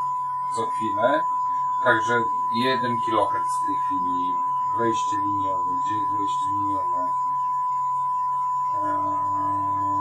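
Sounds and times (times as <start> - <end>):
steady test tone: 0.0 - 10.0
man's drawn-out hesitation sound: 0.6 - 1.2, 1.8 - 7.1.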